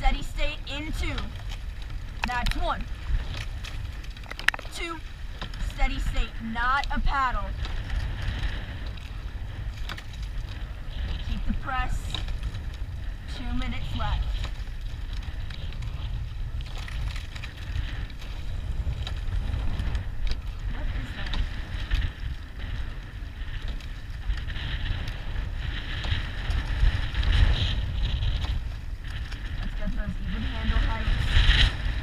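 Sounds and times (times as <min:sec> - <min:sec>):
water rushing along hull: 0:00.0 - 0:32.0
wind buffeting microphone: 0:00.0 - 0:32.0.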